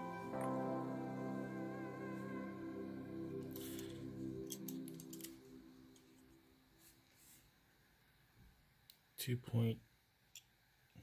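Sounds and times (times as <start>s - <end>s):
background music: 0.0s - 6.7s.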